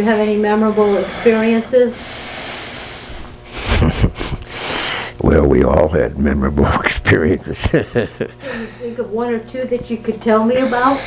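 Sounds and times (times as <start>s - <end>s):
man chuckling: 3.5s - 4.7s, 6.6s - 8.8s.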